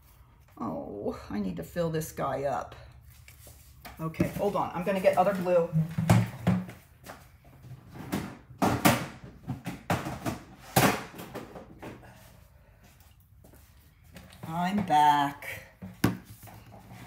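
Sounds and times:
knocks and clatters of rummaging: 0:04.1 - 0:12.2.

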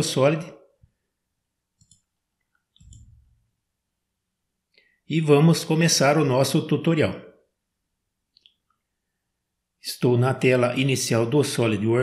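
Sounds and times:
faint computer mouse clicks: 0:01.8 - 0:03.2.

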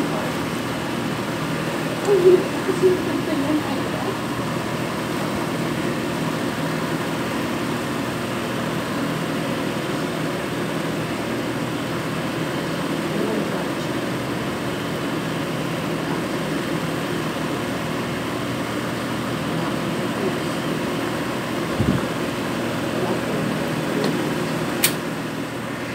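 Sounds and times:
mechanical hum with hiss: 0:00.0 - 0:25.9
sharp click: 0:24.8 - 0:25.0.

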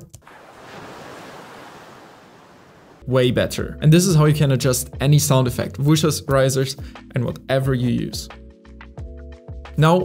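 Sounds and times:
ocean surf washing: 0:00.2 - 0:03.0
wind: 0:00.2 - 0:03.0.

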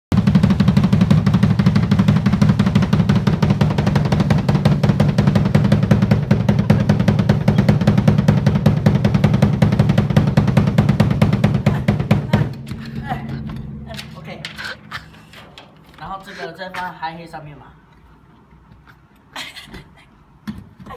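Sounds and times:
drum roll on toms: 0:00.1 - 0:16.4.

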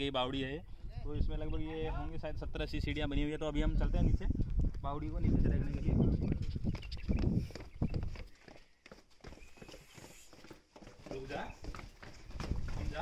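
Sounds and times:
footsteps on stone stairs: 0:05.6 - 0:13.0.

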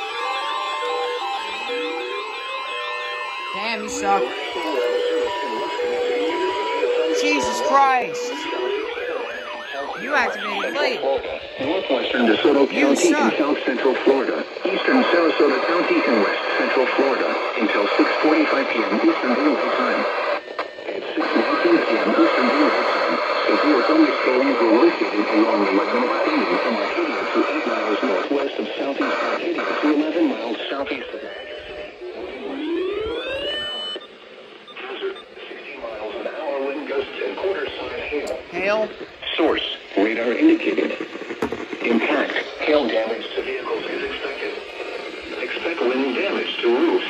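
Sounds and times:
steady alarm tone: 0:00.0 - 0:26.8, 0:30.2 - 0:47.0
weather radio alarms sweeping: 0:00.0 - 0:28.3, 0:29.0 - 0:47.0.

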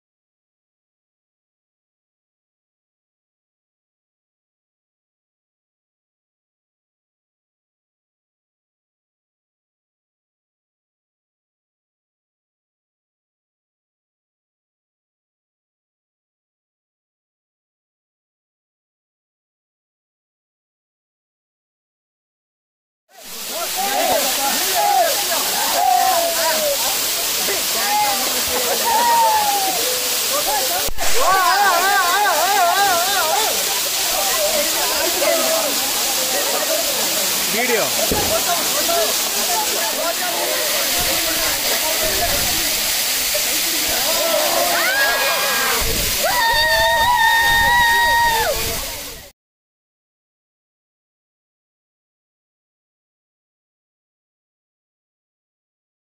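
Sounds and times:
waterfall rushing onto rock: 0:23.2 - 0:49.3
people shouting and calling: 0:23.4 - 0:49.2.

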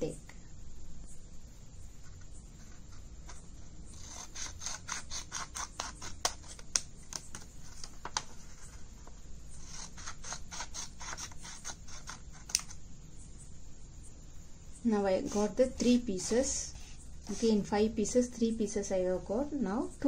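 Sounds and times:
scissors snipping paper: 0:03.3 - 0:07.4, 0:09.6 - 0:12.8.

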